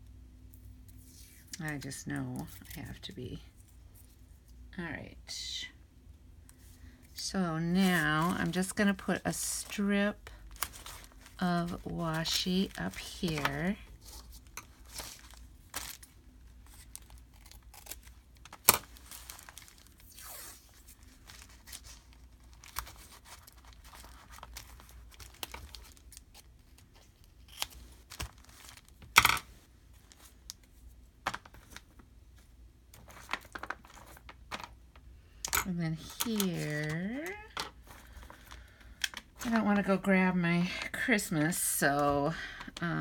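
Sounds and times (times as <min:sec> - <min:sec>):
paper clicks and rustles: 0:09.6 - 0:20.0, 0:20.9 - 0:29.2, 0:30.0 - 0:35.0.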